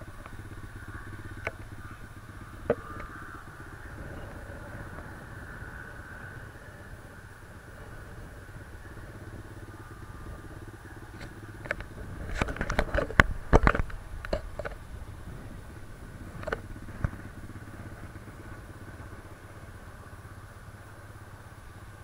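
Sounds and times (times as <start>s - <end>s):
dirt bike engine idling: 0.0s - 22.0s.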